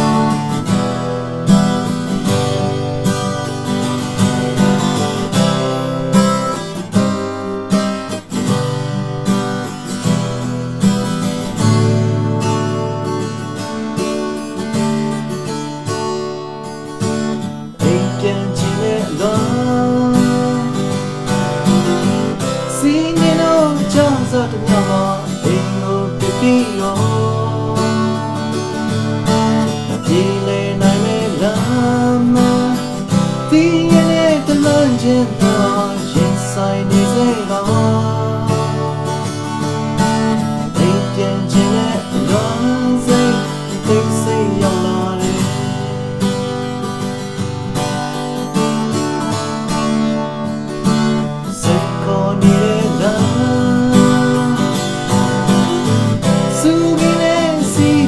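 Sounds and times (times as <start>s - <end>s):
man singing: 0.0s - 0.8s, 17.7s - 46.3s, 50.9s - 58.0s
acoustic guitar strumming: 0.0s - 58.0s.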